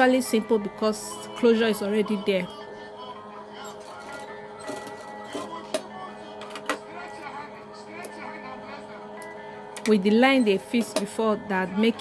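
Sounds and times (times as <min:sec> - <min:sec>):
faint background music or television: 0:00.0 - 0:12.0.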